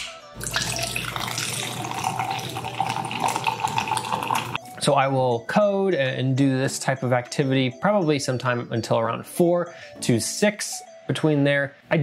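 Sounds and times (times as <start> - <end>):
drink pouring into plastic cup: 0.4 - 4.6.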